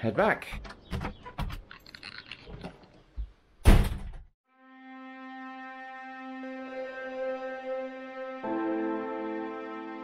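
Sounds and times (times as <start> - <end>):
door shutting thunk: 3.6 - 4.3.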